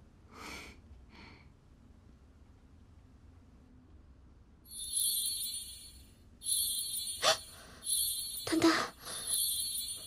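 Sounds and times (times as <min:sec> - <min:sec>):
shimmering high-pitched tones: 0:04.7 - 0:10.0.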